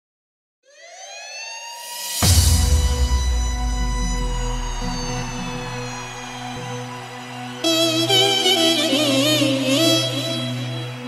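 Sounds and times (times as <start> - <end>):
electronic synth riser: 0.7 - 8.0.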